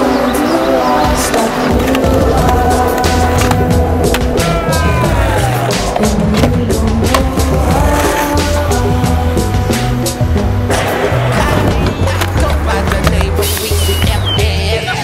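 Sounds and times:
skateboard wheels rolling on asphalt: 0.0s - 14.8s
music with heavy bass: 1.0s - 15.0s
skateboard clacks: 1.1s - 9.1s, 10.7s - 15.0s.

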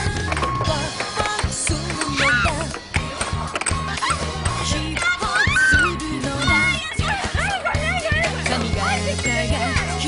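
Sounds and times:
air hockey puck clacks: 0.0s - 5.2s
background music with bass: 0.0s - 10.0s
women squealing and laughing: 5.2s - 6.0s, 6.6s - 8.4s.

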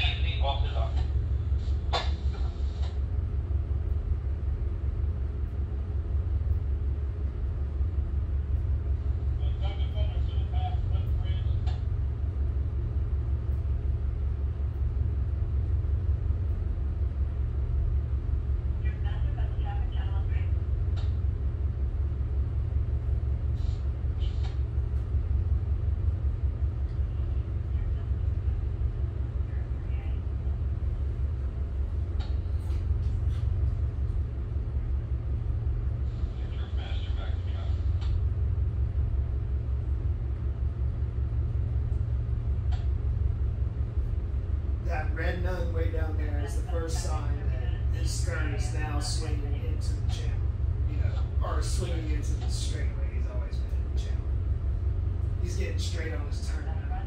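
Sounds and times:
diesel engines droning: 0.0s - 57.0s.

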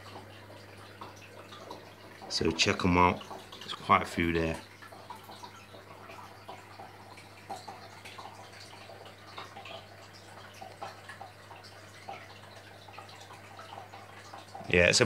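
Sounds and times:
water trickling and dripping: 0.0s - 15.0s.

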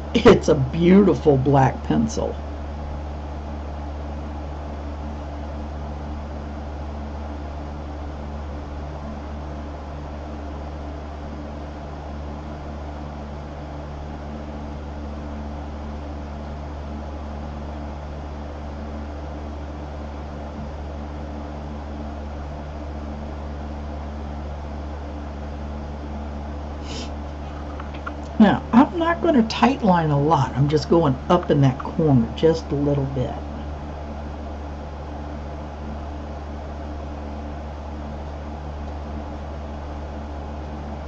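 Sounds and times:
fan hum and hiss: 0.0s - 41.0s.

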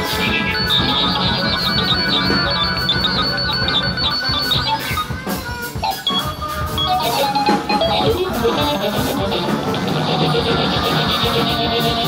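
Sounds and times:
guitar: 0.0s - 12.0s
keyboard tones: 0.0s - 12.0s.

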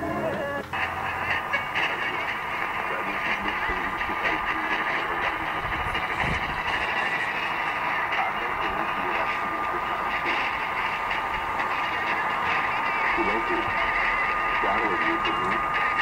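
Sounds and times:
radio static noise: 0.0s - 16.0s
weak muffled radio broadcast: 0.0s - 16.0s
steady whistle tone: 0.8s - 16.0s.

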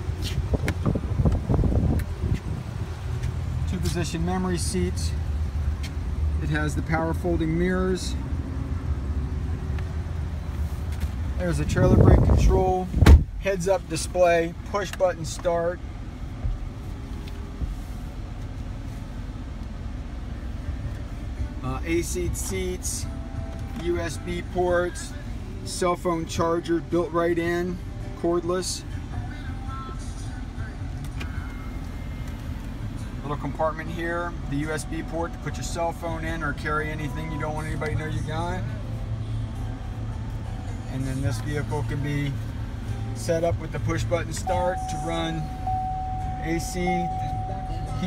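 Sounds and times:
car engine idling: 0.0s - 48.0s.

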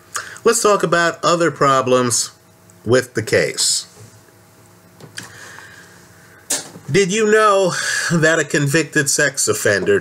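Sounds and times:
man speaking: 0.4s - 4.0s, 6.9s - 10.0s
sharp intake of breath: 5.2s - 6.5s.

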